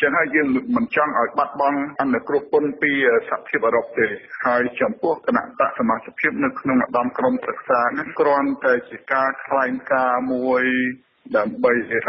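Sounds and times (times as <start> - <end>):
person narrating news report: 0.0 - 12.0.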